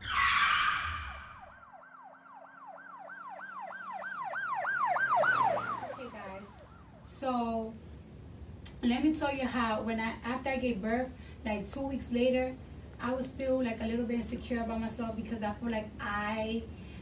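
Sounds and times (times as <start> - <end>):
emergency siren wailing: 0.0 - 7.2.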